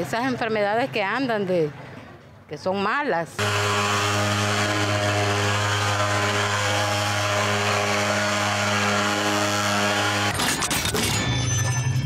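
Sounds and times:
fogging machine buzzing drone: 3.4s - 10.4s.

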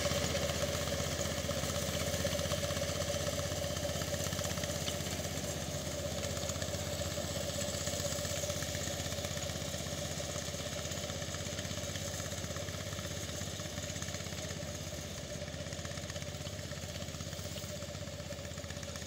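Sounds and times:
small engine running: 0.0s - 19.0s.

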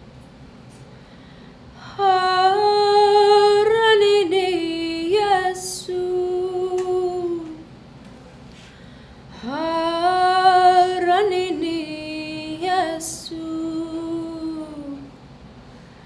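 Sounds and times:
girl singing unaccompanied: 1.8s - 7.7s, 9.4s - 15.1s
quick breath: 8.5s - 9.3s.

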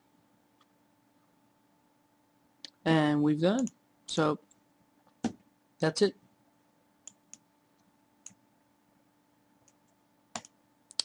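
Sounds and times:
faint steady hum: 0.0s - 11.0s
computer clicks: 7.0s - 8.4s, 9.6s - 11.0s.

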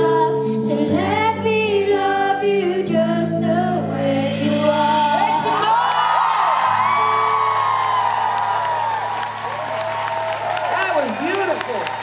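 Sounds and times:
crowd cheering and whooping: 5.2s - 12.0s.

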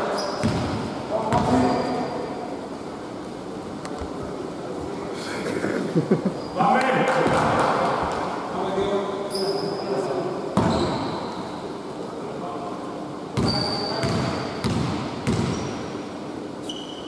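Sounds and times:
basketball bouncing on wooden floor: 0.4s - 1.6s, 13.4s - 15.7s.

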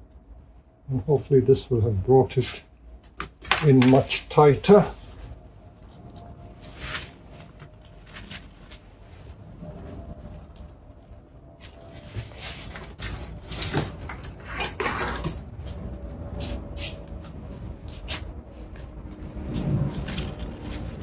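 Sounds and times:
hands handling branches and wire: 2.4s - 9.4s, 11.6s - 15.8s, 16.4s - 21.0s.

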